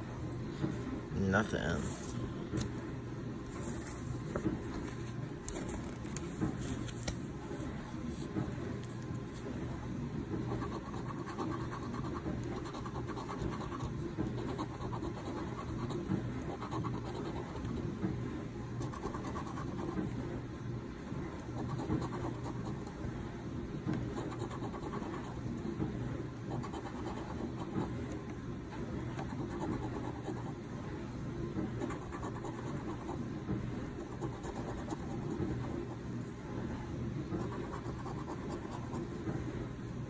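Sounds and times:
coin scratching lottery ticket: 31.8s - 33.2s, 34.0s - 35.4s.

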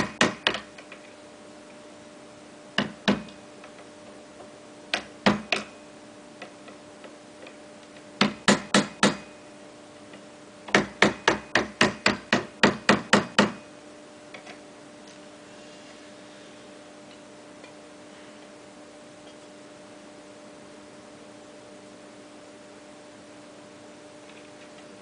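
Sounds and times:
hammer striking metal frame: 0.0s - 0.6s, 8.2s - 9.3s, 10.7s - 13.6s.

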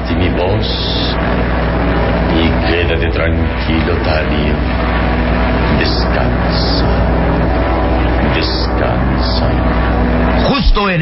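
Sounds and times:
aircraft engine droning: 0.0s - 11.0s
deep constant hum: 0.0s - 11.0s.

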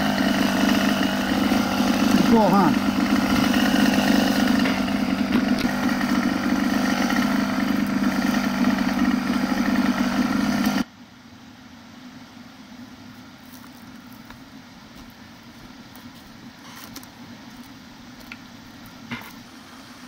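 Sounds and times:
small engine idling: 0.0s - 10.9s, 13.5s - 20.0s.

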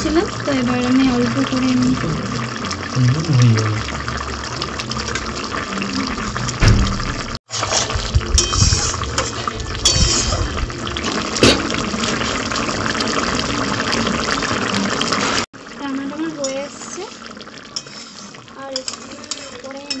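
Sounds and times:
curry bubbling and popping: 0.0s - 20.0s.

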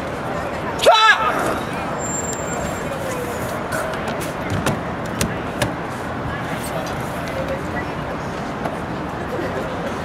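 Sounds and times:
street background noise: 0.0s - 10.0s.

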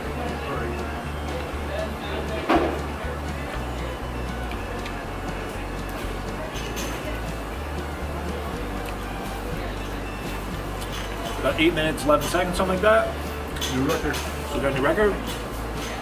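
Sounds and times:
background music with bass line: 0.0s - 13.7s.

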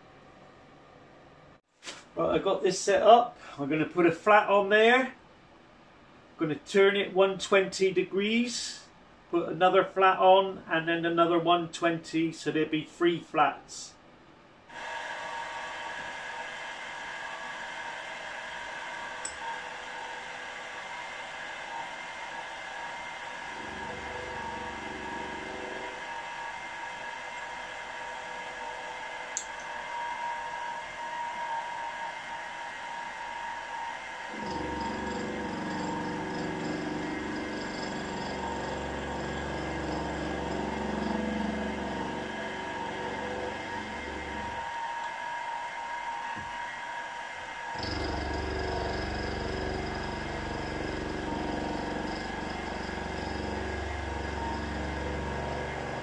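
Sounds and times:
milling spindle whine: 14.8s - 56.0s
rough metal cutting sound: 23.4s - 27.8s, 34.3s - 44.8s, 47.7s - 56.0s.

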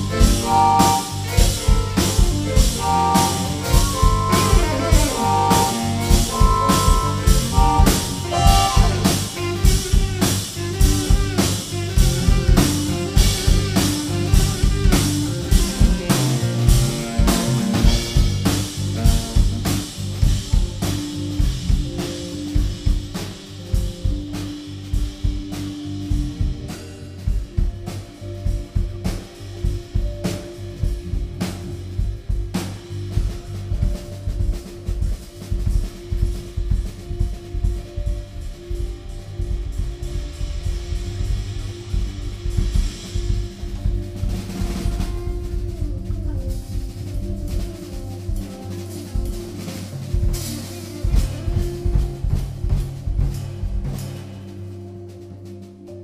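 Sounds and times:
drum kit playing: 0.0s - 56.0s
live instrumental band: 0.0s - 56.0s.

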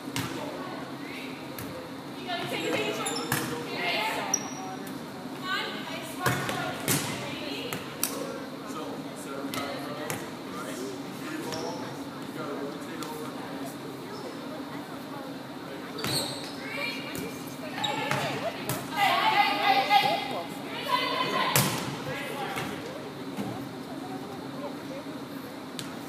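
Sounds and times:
volleyball slaps: 6.2s - 8.2s.

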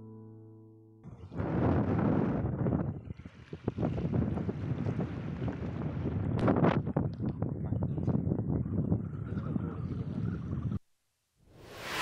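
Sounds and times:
wind buffeting microphone: 1.1s - 10.8s.

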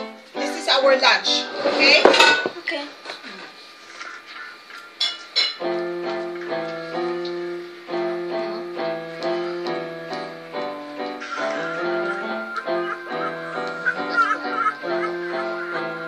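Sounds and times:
electronic keyboard playing: 5.8s - 16.0s.

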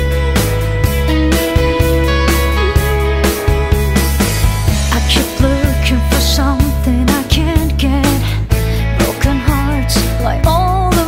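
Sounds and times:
held lead guitar note: 0.0s - 7.0s
instrumental rock band: 0.0s - 11.0s.

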